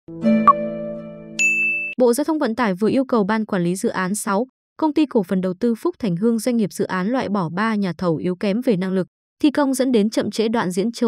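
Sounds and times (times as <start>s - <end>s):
high bell-like ding: 1.4s - 2.0s.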